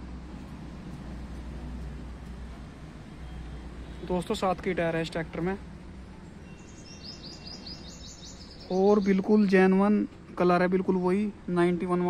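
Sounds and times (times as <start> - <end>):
small bird chirping: 6.2 - 9.3.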